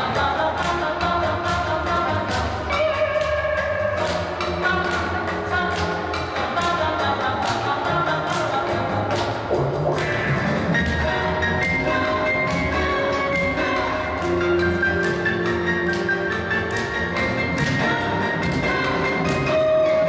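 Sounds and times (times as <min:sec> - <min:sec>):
instrumental music over loudspeaker: 0:00.0 - 0:20.0.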